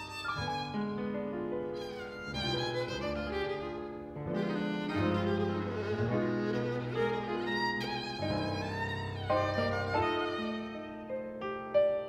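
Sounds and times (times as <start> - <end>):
violin bowed notes: 0.0 - 12.0.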